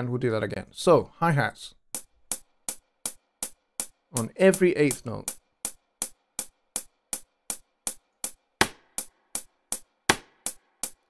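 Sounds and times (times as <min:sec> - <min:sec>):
hi-hat pattern: 0:01.8 - 0:11.0.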